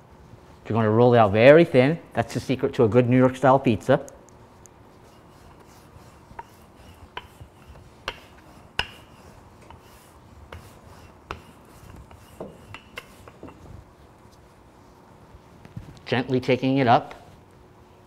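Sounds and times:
rolling pin rubbing on dough: 0:04.8 - 0:15.0.

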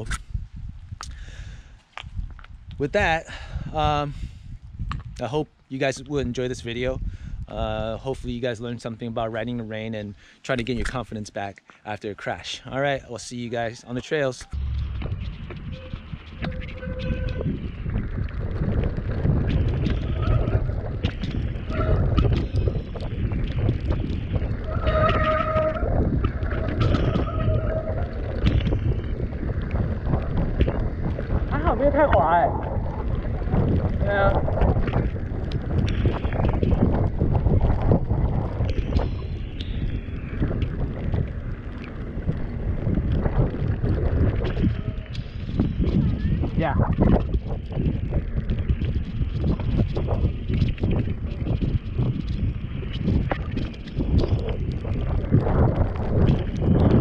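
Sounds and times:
wind rumbling on microphone: 0:00.0 - 0:57.0
tyres rolling on dirt: 0:12.3 - 0:57.0
bike rattling: 0:14.4 - 0:57.0
short squealing tones: 0:15.7 - 0:17.5, 0:24.8 - 0:25.9.

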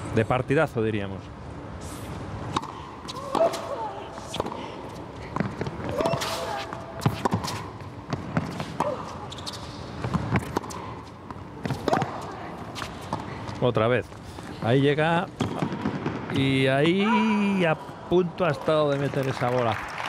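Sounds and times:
tennis ball bouncing on court: 0:02.5 - 0:13.6, 0:15.2 - 0:16.5.

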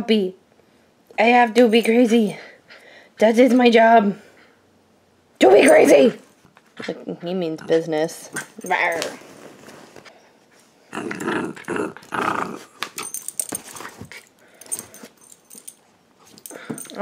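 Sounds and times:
puppy growling: 0:10.9 - 0:13.1.

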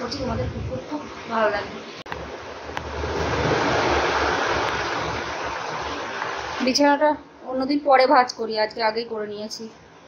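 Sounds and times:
air rushing on microphone: 0:02.2 - 0:06.9.

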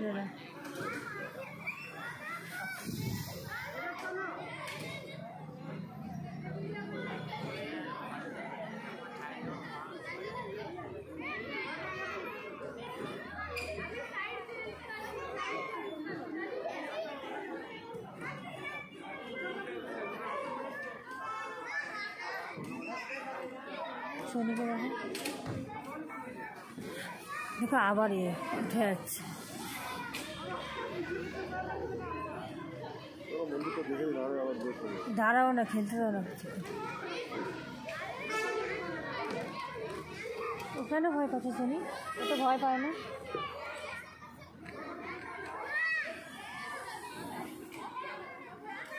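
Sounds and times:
children playing and chattering: 0:00.0 - 0:48.9.

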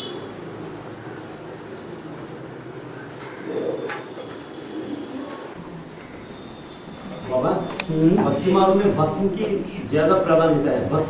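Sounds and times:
steady background hiss: 0:00.0 - 0:11.0
bird calling: 0:02.9 - 0:07.8.

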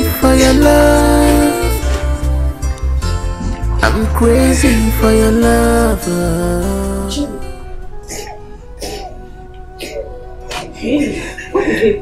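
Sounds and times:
soft background music: 0:00.0 - 0:12.0
woman sobbing: 0:10.0 - 0:12.0.

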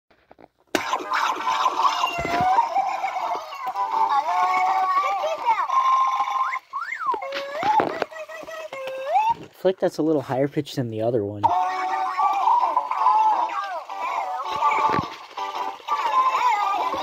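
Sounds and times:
toys chattering in high gibberish: 0:00.8 - 0:09.6, 0:11.4 - 0:17.0.

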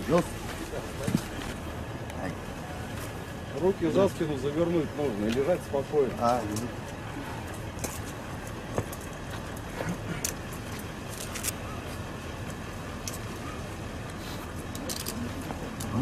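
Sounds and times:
distant traffic: 0:00.0 - 0:16.0.

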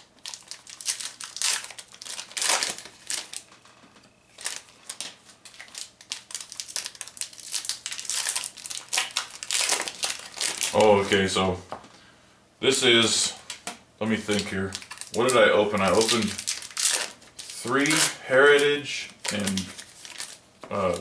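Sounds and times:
foil wrapper crinkling: 0:00.0 - 0:11.3, 0:14.2 - 0:21.0.

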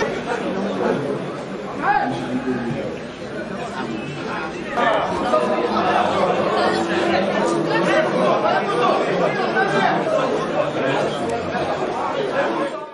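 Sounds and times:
many voices chattering: 0:00.0 - 0:12.9.

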